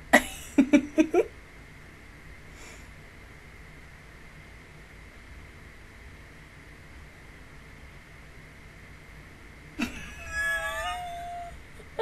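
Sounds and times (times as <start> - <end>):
cat meowing: 9.8 - 11.6.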